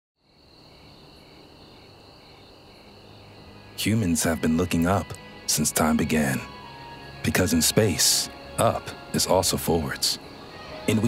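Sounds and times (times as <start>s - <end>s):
crickets high continuous trill: 0.2s - 11.0s
slower cricket chirp: 0.2s - 11.0s.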